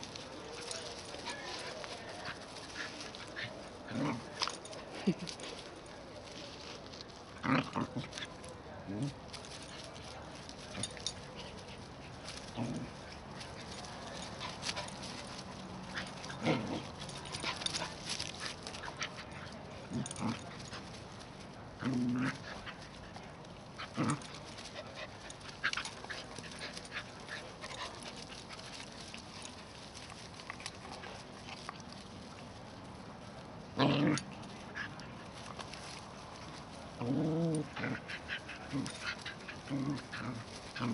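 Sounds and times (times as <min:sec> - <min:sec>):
scuffling and rustling: 0:00.0 - 0:40.9
dog growling: 0:16.3 - 0:16.9, 0:37.0 - 0:40.9.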